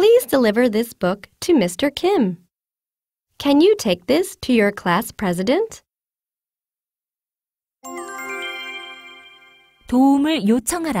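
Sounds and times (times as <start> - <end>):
bright chime jingle: 7.8 - 10.0.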